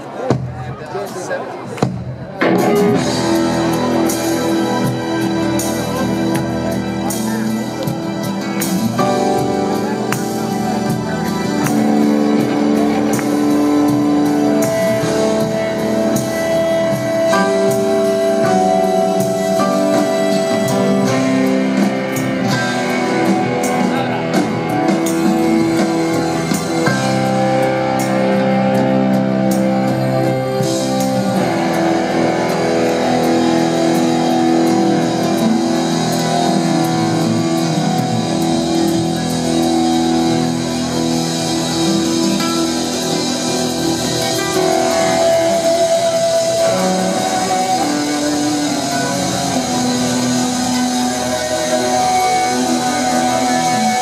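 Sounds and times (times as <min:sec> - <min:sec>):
live rock band playing: 0:00.0 - 0:54.0.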